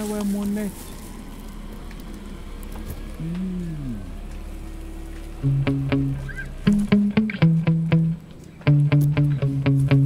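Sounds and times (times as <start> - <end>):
man's wordless vocal sound: 3.2 - 4.2.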